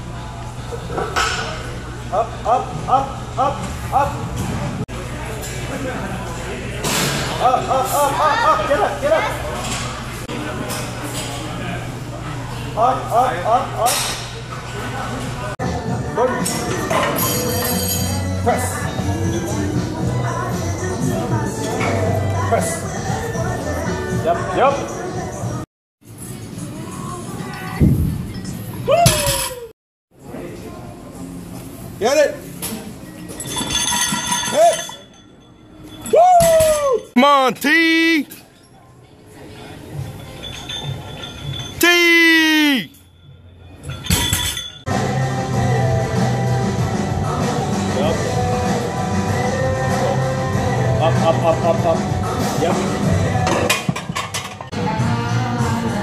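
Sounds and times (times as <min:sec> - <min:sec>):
gym background noise: 0:00.0 - 0:55.2
person shouting: 0:41.8 - 0:43.0
background music: 0:44.9 - 0:54.1, 0:54.7 - 0:56.0.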